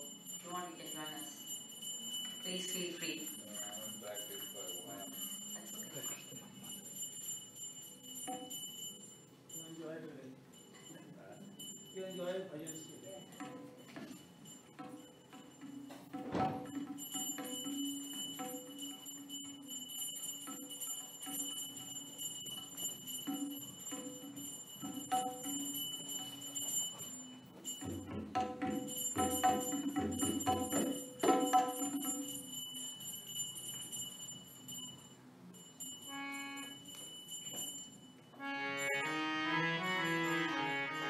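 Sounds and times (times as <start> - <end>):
hand bell ringing: 0.0 - 41.0
harmonium chords: 36.1 - 36.8, 38.4 - 41.0.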